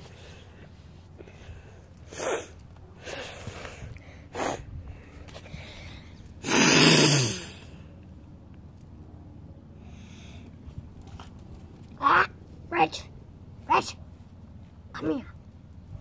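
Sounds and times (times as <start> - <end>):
person sneezing: 6.4 - 7.5.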